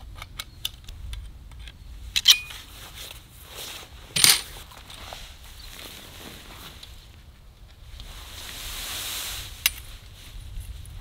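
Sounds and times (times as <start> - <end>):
metal tent poles clinking: 2.2 - 2.7, 4.1 - 4.6.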